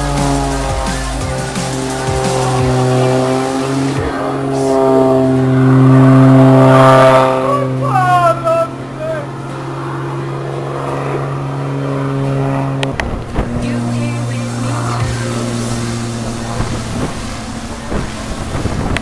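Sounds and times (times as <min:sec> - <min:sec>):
propeller plane engine droning: 0:00.0 - 0:19.0.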